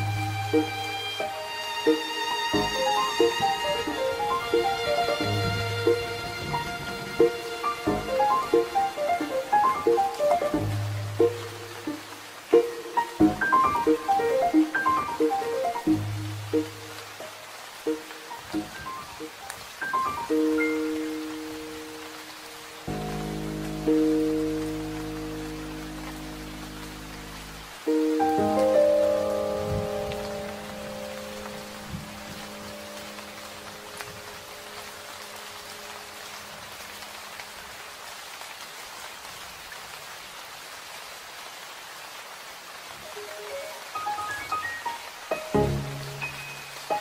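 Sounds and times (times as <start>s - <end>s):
soft instrumental music: 0.0s - 36.4s, 43.0s - 47.0s
rain falling: 0.0s - 47.0s.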